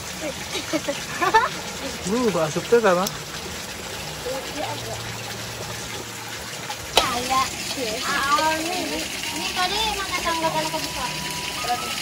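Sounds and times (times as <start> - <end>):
steady water hiss: 0.0 - 12.0.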